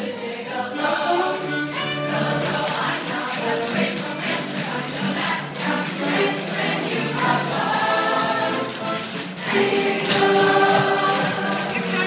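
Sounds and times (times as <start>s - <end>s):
cast singing in chorus: 0.0s - 11.9s
musical accompaniment: 0.0s - 12.0s.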